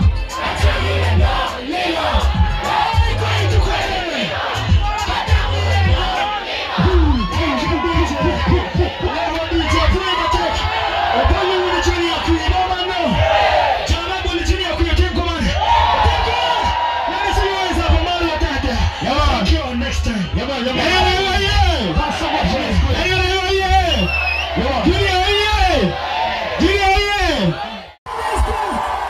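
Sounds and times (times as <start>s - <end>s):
amplified backing track with heavy bass: 0.0s - 26.0s
crowd noise: 0.0s - 29.0s.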